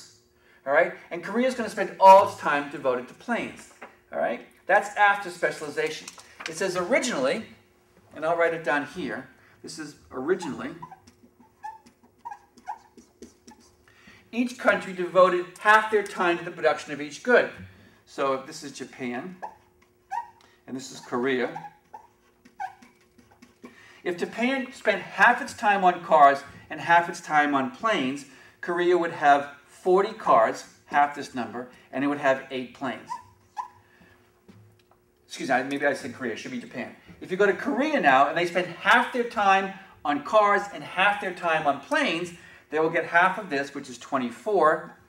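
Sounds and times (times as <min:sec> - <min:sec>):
marker squeaking on whiteboard: 0:10.1 - 0:13.8, 0:19.4 - 0:25.6, 0:33.0 - 0:33.8.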